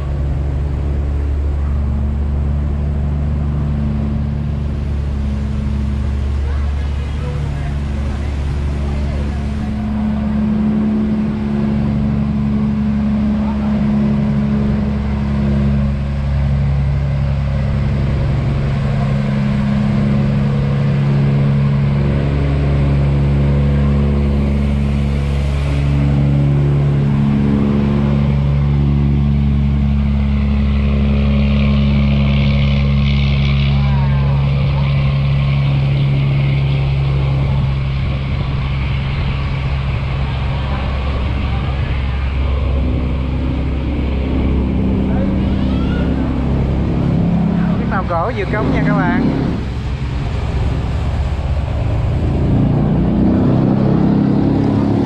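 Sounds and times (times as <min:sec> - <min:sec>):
boat diesel engine droning: 0:00.0 - 0:55.0.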